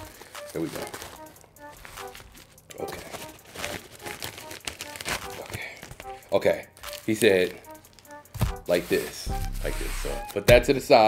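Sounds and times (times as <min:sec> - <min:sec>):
plastic mailer crinkling: 0:00.0 - 0:08.0
soft background music: 0:00.0 - 0:11.0.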